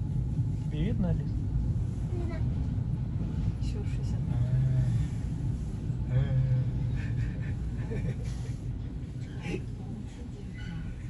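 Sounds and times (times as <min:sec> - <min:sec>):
elevator descending rumble: 0:00.0 - 0:11.0.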